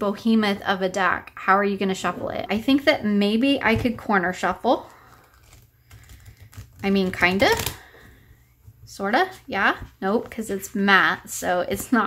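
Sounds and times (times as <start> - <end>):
cards being shuffled: 5.0 - 8.0.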